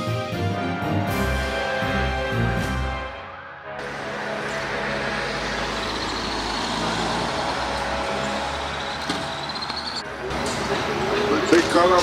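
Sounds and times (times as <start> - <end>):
street traffic noise: 3.8 - 12.0.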